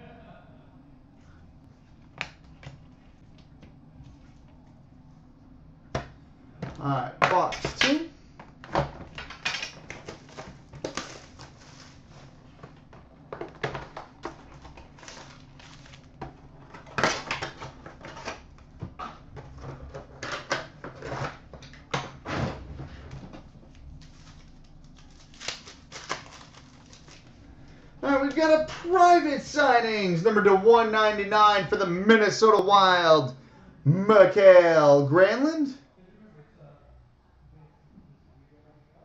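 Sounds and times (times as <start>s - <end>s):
wrappers crinkling and tearing: 9.2s - 12.8s, 13.6s - 18.4s, 23.6s - 27.4s.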